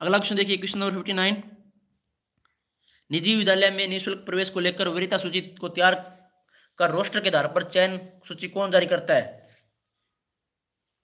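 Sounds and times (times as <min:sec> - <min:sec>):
man speaking: 0:00.0 - 0:01.7, 0:03.1 - 0:09.6.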